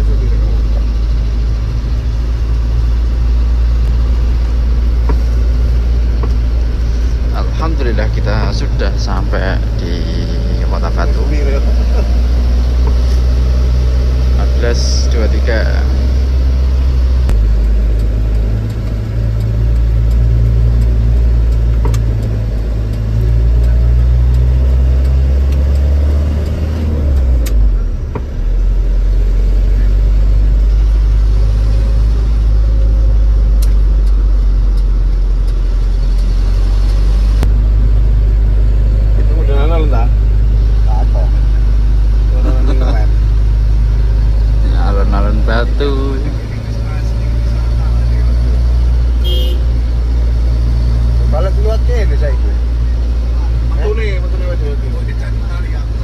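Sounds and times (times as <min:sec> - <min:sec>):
vehicle engine droning: 0:00.0 - 0:56.0.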